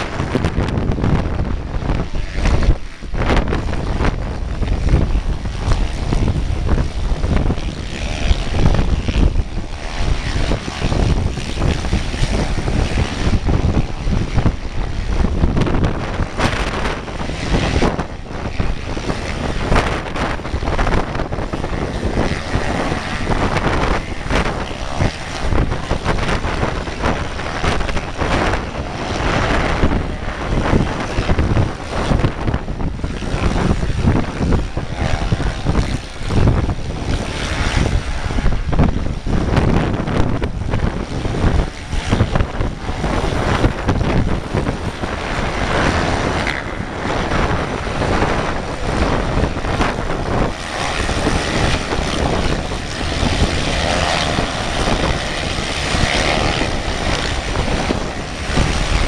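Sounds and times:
distant dirt bike engines racing: 0.0s - 59.0s
wind buffeting microphone: 0.0s - 59.0s.

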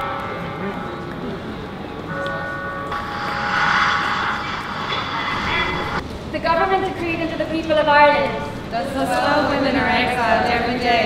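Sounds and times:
rush of noise: 2.1s - 6.4s.

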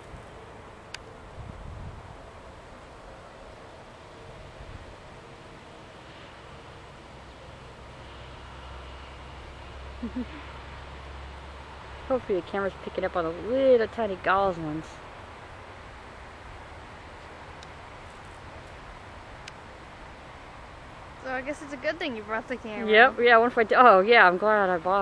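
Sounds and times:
wind buffeting microphone: 0.0s - 3.6s
faint outdoor ambience: 0.0s - 25.0s.

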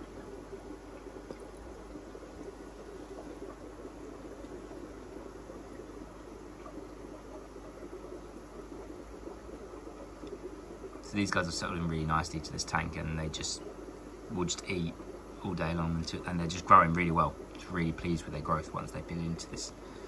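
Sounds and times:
aquarium sponge filter bubbling: 0.0s - 20.0s
low hum: 0.0s - 20.0s.

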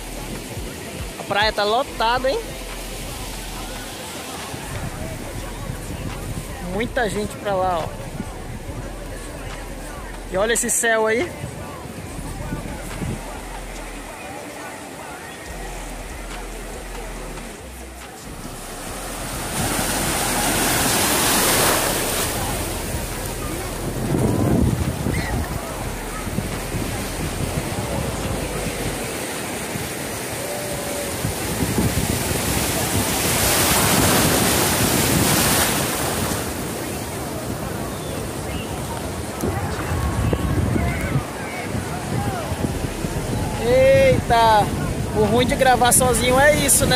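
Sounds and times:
ocean surf: 0.0s - 46.9s
waves breaking: 0.0s - 46.9s
wind buffeting microphone: 1.9s - 14.2s, 18.2s - 46.9s.

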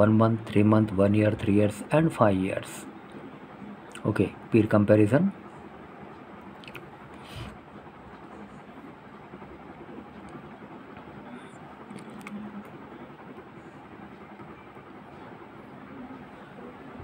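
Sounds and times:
background rumble and hiss: 0.0s - 17.0s
faint low hum: 0.0s - 17.0s.

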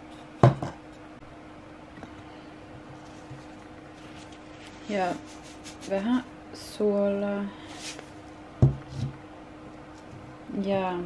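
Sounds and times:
canister knocking on table: 8.6s - 8.8s.

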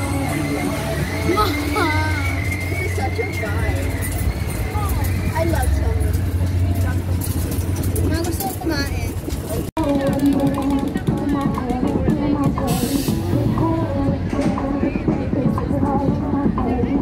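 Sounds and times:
indistinct voices: 0.0s - 17.0s.

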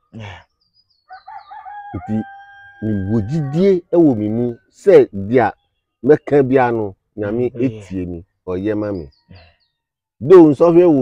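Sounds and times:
rooster crowing: 1.1s - 3.8s.

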